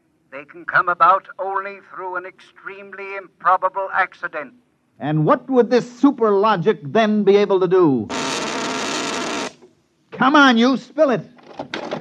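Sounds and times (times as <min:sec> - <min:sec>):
electric buzz: 0:08.1 - 0:09.7.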